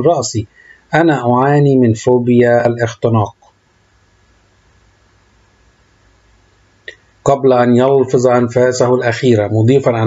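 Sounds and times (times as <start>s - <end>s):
faint recording hiss: 0.0s - 10.0s.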